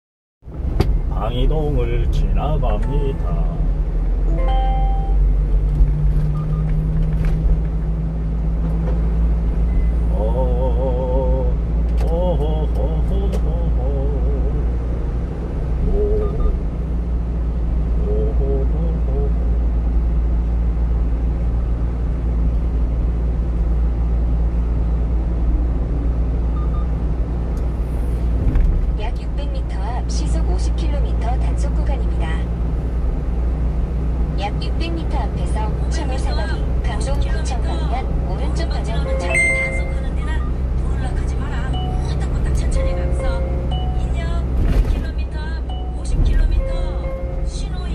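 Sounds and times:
truck engine and road rumble: 0.4s - 47.9s.

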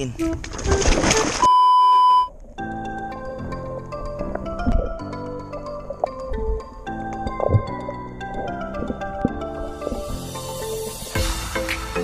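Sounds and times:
background music: 0.0s - 1.4s, 2.5s - 12.0s
water rushing and splashing: 0.2s - 1.5s
electronic beep: 1.4s - 2.3s.

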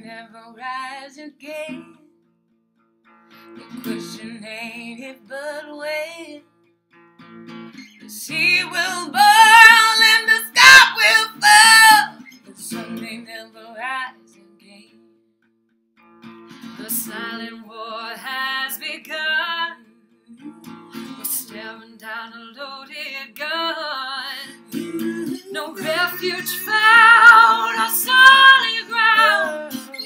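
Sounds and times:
strummed acoustic guitar: 0.0s - 30.0s
women singing in harmony: 8.3s - 12.2s, 21.4s - 30.0s.

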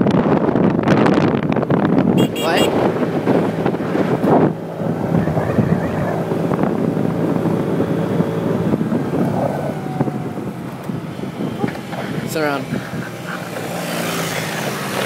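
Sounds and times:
wind buffeting microphone: 0.0s - 15.0s
moped engine cruising: 0.3s - 15.0s.

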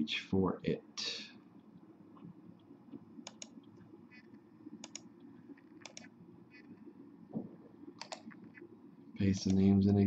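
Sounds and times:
low steady hum: 0.0s - 10.0s
computer clicking: 2.6s - 6.7s, 8.0s - 9.7s.

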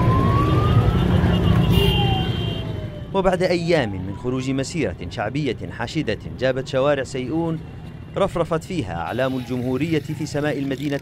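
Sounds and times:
siren wailing: 0.0s - 4.8s
car and motorcycle engines rumbling: 0.0s - 11.0s.

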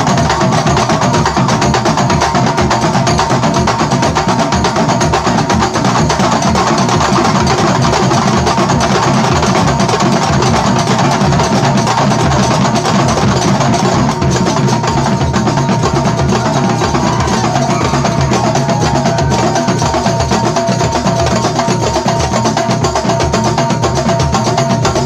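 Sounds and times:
percussion ensemble drumming: 0.0s - 25.0s
steady high tone: 15.4s - 20.6s.

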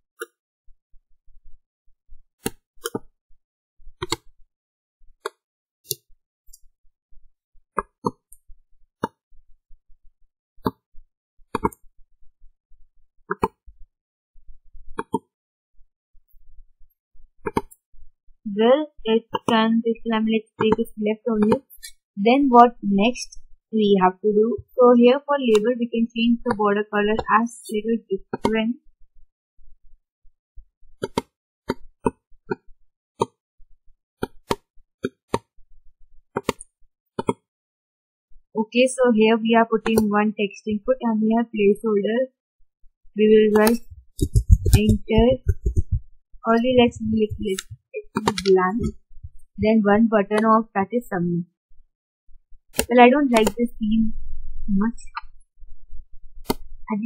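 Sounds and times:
computer mouse clicks: 4.0s - 4.3s, 39.8s - 40.1s, 43.5s - 45.9s, 46.6s - 48.9s, 52.8s - 53.7s.

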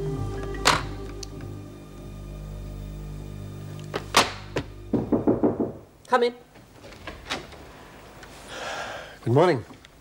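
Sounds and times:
held background music tones: 0.0s - 5.9s
knocks on a door: 4.9s - 5.9s.

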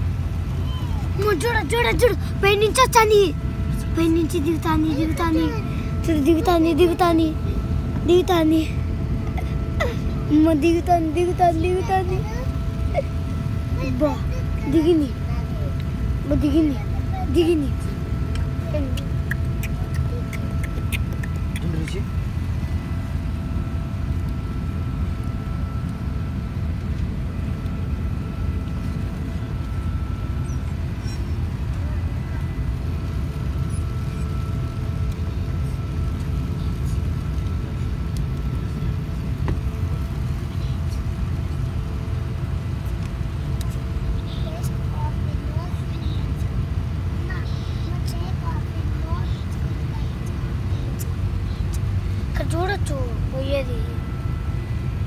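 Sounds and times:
airliner cabin rumble: 0.0s - 55.0s
faint passenger voices: 0.0s - 55.0s
faint steady whine: 0.0s - 55.0s.

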